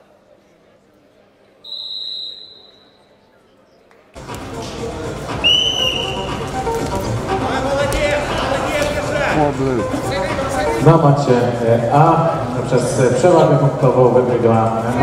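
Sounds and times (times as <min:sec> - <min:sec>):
loud arena noise: 0:00.0 - 0:15.0
referee's whistle blasts: 0:01.6 - 0:03.1, 0:05.4 - 0:06.3.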